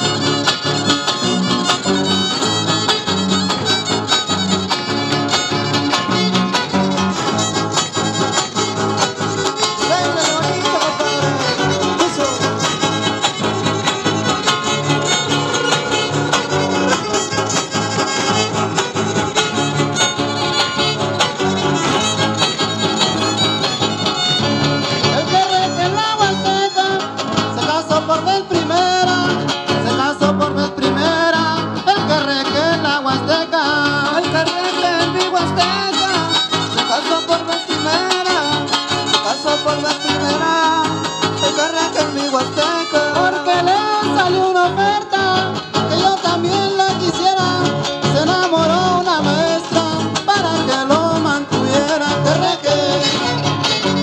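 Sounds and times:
strummed guitars rhythm: 0.0 - 54.0
violin ornamented melody: 10.6 - 25.8.

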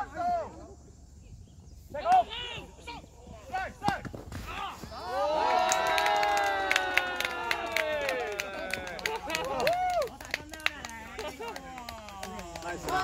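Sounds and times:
players shouting: 2.0 - 10.1
sharp claps: 5.6 - 13.0.

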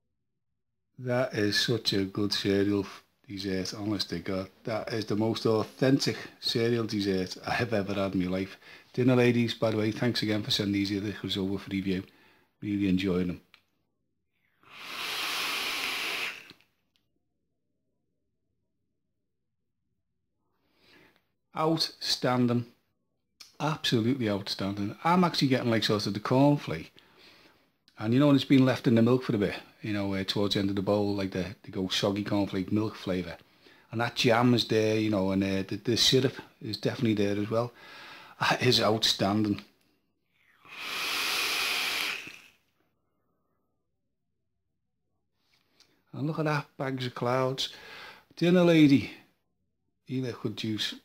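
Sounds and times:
airy hiss of atomizer drag: 14.6 - 16.6, 40.5 - 42.6.

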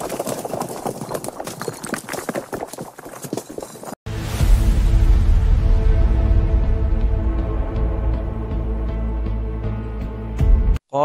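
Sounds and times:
stone wall cracking and crumbling: 0.0 - 4.0.

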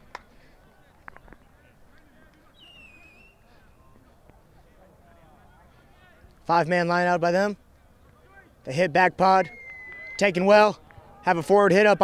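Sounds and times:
sharp hand claps: 0.0 - 0.3.

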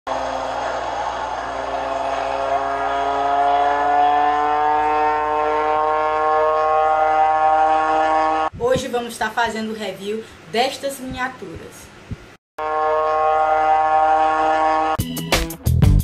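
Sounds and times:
engine drone rising in pitch: 0.1 - 8.5, 12.6 - 15.3.

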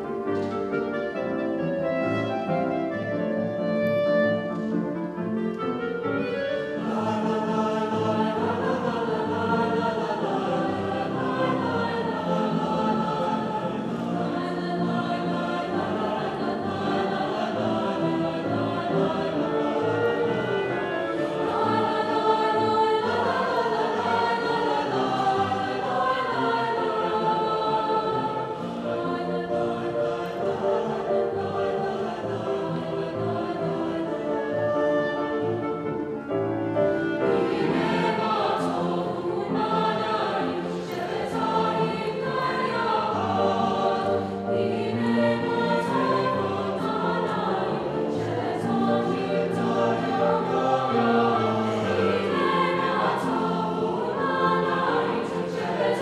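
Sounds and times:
choir singing in harmony: 0.0 - 56.0
grand piano: 0.0 - 56.0.

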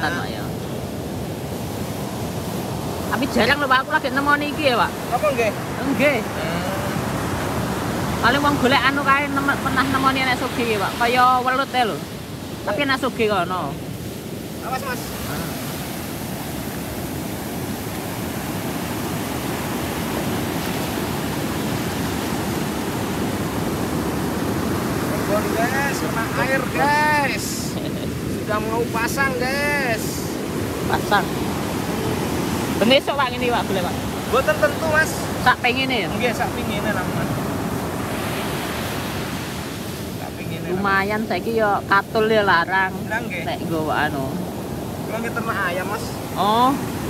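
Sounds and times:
surf washing over sand: 0.0 - 47.0.

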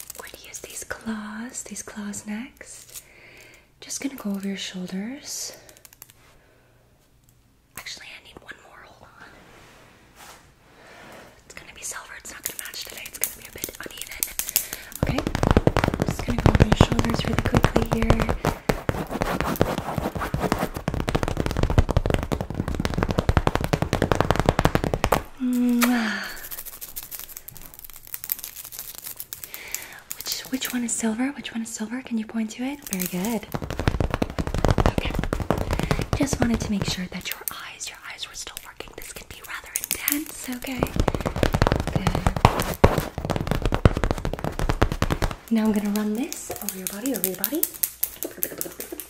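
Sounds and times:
nails scratching and tapping: 0.0 - 1.0, 11.5 - 49.0
soft whispering: 0.0 - 3.0, 7.7 - 9.5, 11.4 - 15.4, 16.0 - 18.6, 29.8 - 33.5, 34.8 - 41.2.

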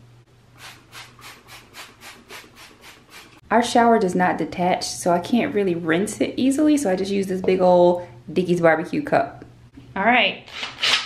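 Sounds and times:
spray bottle squirts: 0.6 - 3.4.

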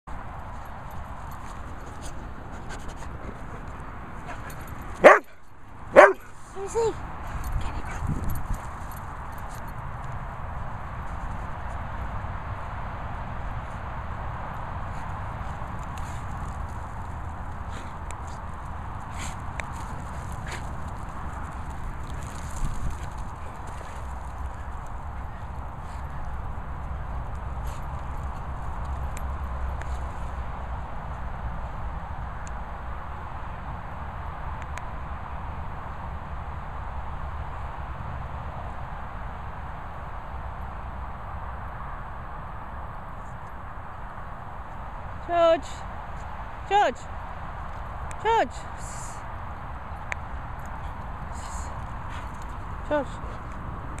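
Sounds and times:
dogs running on grass: 0.2 - 31.1, 48.8 - 54.0
dog barking loudly: 5.0 - 6.3.

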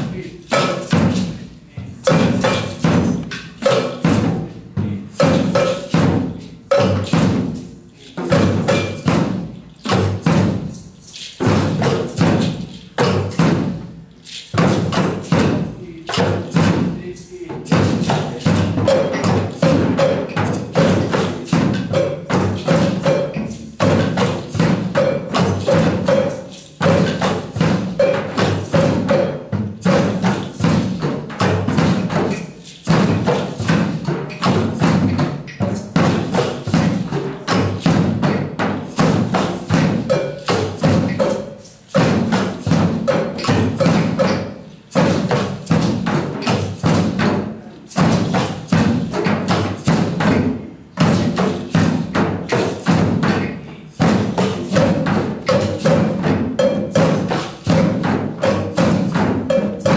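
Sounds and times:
drum circle playing: 0.0 - 59.9.

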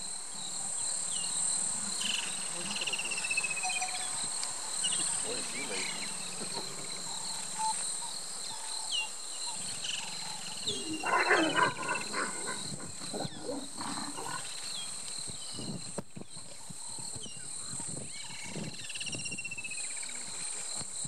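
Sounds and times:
leopards growling: 4.9 - 8.1, 9.6 - 14.6.

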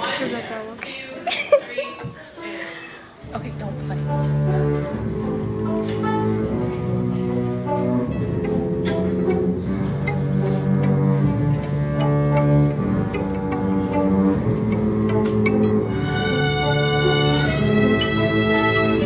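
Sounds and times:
bowed string instrument: 0.0 - 19.0
violin sustained notes: 3.2 - 19.0.

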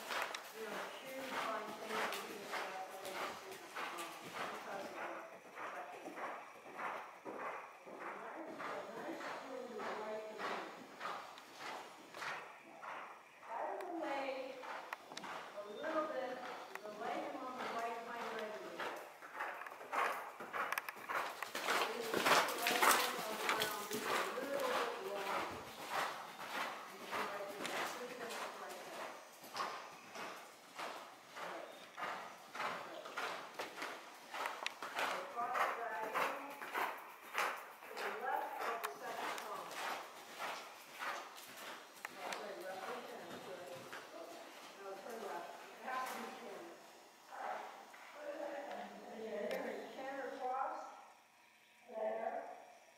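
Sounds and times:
horse hoofbeats on dirt: 0.0 - 46.6.

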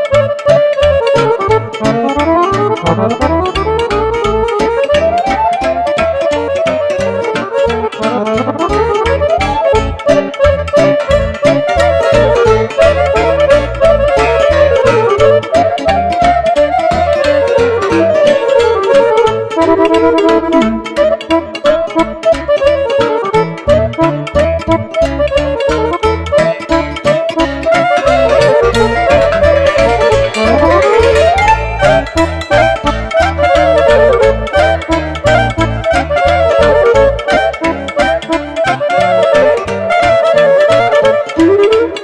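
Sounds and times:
accordion: 0.0 - 42.0
cimbalom: 0.0 - 42.0
clarinet: 0.0 - 42.0
keyboard bass and chords: 0.0 - 42.0.

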